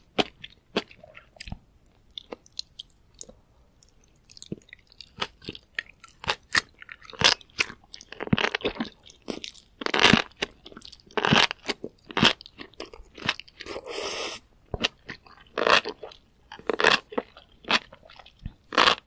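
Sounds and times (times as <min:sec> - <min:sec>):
wet crunchy chewing: 0:00.1 - 0:14.0, 0:14.8 - 0:19.0.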